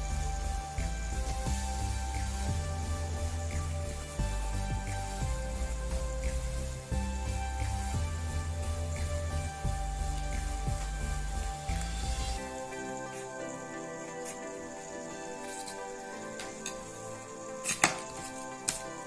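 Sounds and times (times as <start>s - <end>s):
background music: 0.0s - 19.0s
scissors cutting cardboard: 17.6s - 18.9s.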